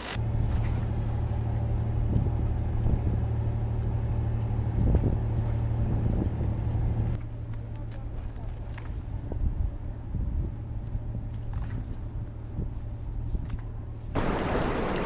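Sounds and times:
ship machinery hum: 0.0 - 15.0.

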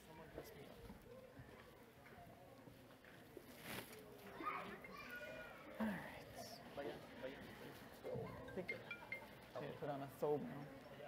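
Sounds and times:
faint voices in a hall: 0.0 - 11.0.

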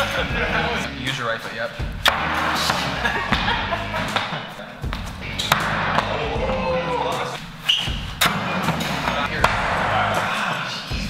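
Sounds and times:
background music: 0.0 - 11.0
voices: 2.6 - 7.4, 8.2 - 11.0.

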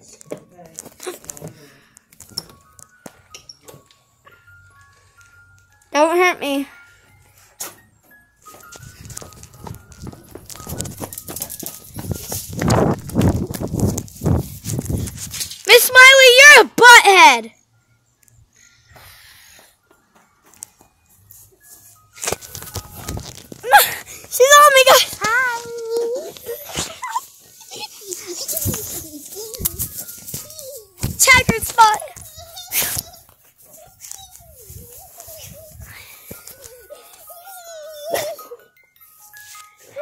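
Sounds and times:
running footfalls: 8.7 - 15.2
hard breathing: 18.5 - 19.9, 23.6 - 24.4, 34.7 - 37.4
dog whining and grunting: 34.4 - 38.7.

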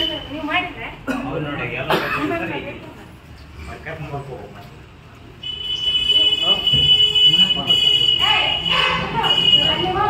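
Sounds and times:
men talking: 1.2 - 2.7, 3.6 - 5.4, 6.4 - 8.2.

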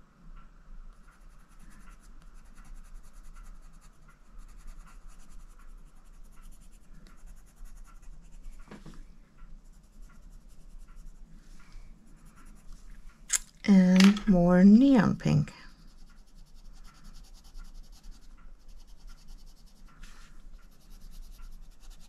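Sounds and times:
coloured pencil scratching paper: 1.0 - 8.7, 9.6 - 11.3, 12.1 - 12.8, 15.7 - 22.0.

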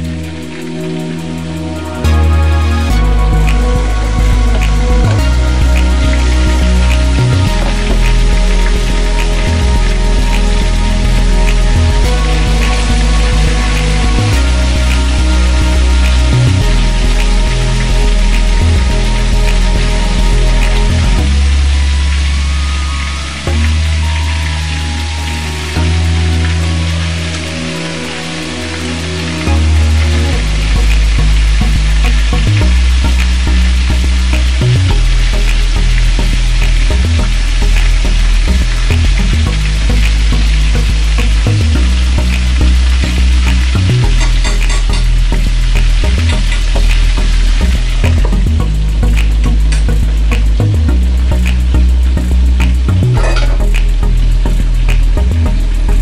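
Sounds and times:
background music with bass: 0.0 - 56.0.

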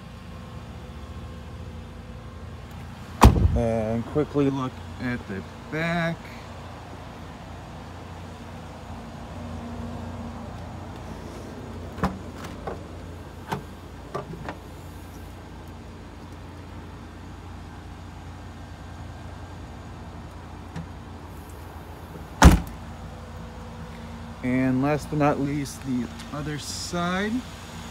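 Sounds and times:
car engine idling: 0.0 - 27.9
liftgate shutting thud: 3.2 - 3.6, 22.4 - 22.8.

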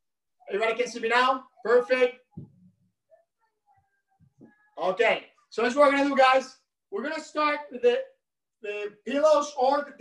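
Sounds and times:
man's voice: 0.4 - 2.3, 4.8 - 10.0.

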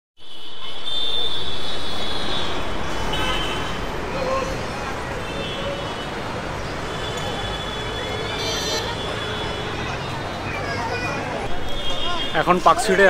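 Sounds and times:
car horns: 0.2 - 10.4, 11.4 - 13.0
city street traffic rumble: 0.2 - 13.0
people's voices: 0.7 - 13.0.

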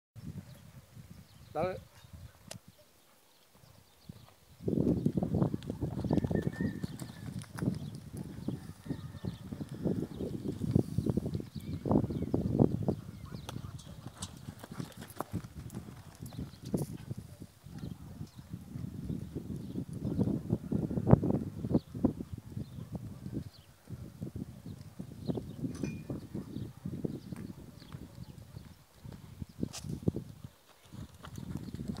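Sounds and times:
horse hoofbeats on sand: 13.4 - 17.1, 27.4 - 32.0.

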